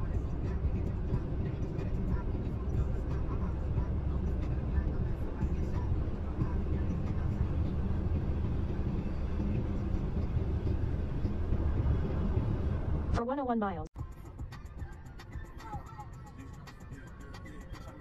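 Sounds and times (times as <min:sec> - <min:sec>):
engine hum: 0:00.0 - 0:13.2
road and tyre noise: 0:00.0 - 0:18.0.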